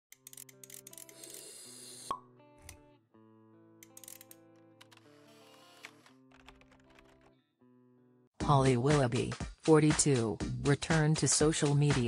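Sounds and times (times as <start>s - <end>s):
soft music: 0.1s - 12.0s.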